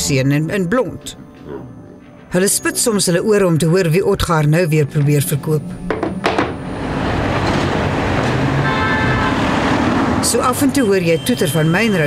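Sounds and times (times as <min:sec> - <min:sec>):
city road traffic rumble: 0:04.8 - 0:12.0.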